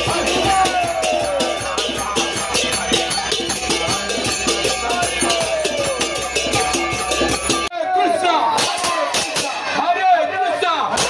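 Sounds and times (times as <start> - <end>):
hand cymbals beat: 0.0 - 7.7, 8.6 - 9.8
voices chanting: 0.0 - 9.7
many voices calling out: 0.0 - 11.0.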